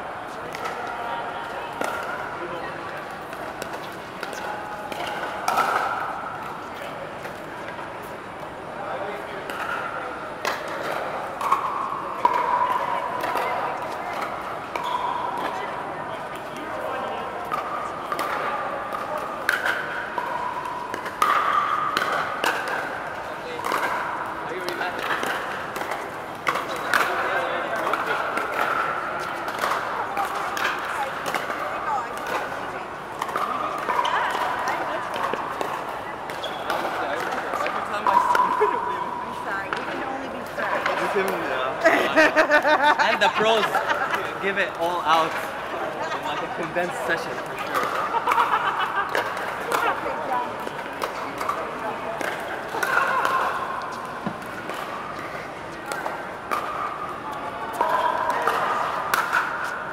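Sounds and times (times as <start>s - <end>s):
murmur of voices: 0.0s - 59.9s
paddles hitting plastic balls: 17.4s - 38.6s, 46.6s - 59.9s.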